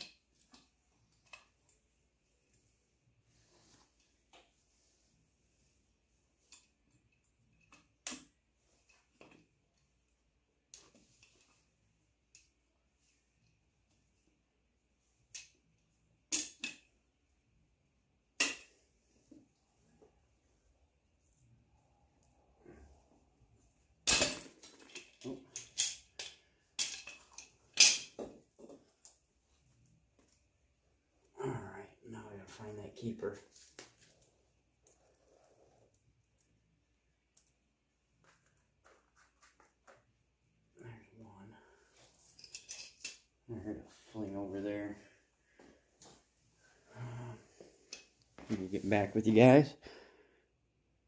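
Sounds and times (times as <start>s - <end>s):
valve spring parts clattering: 24.0s - 28.4s.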